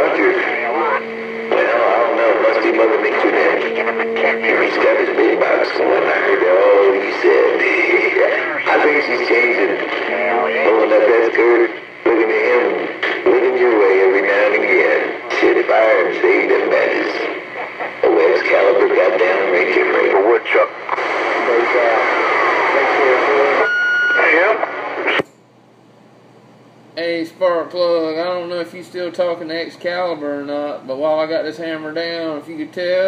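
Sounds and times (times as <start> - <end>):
garbled voice over radio speaker: 0.0 - 24.7.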